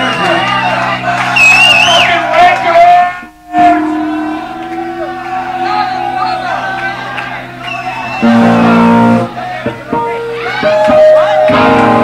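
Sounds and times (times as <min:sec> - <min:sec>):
rock band droning chord: 0:03.3 - 0:12.0.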